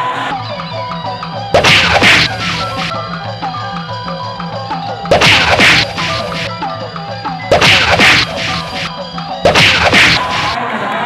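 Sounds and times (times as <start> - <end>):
loud crashing clashes: 1.6 - 3.0, 5.1 - 6.5, 7.5 - 8.9, 9.5 - 10.6
steady drumbeat: 1.6 - 3.1, 5.0 - 6.7, 7.4 - 10.6.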